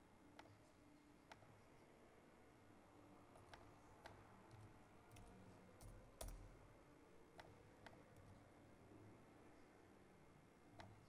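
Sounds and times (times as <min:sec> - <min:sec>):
faint computer mouse clicks: 0:03.4 - 0:06.6, 0:10.8 - 0:11.0.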